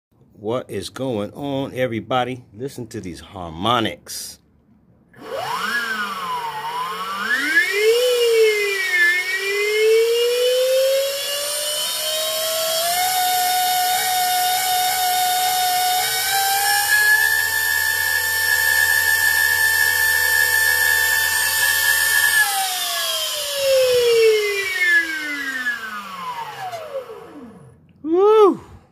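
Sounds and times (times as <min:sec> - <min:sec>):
electric motor whine: 0:05.2 - 0:27.8.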